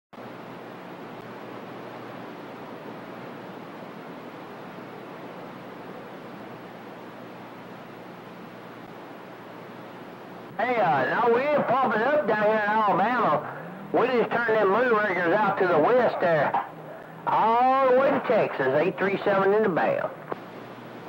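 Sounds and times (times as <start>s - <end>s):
radio static hiss: 0.2s - 21.0s.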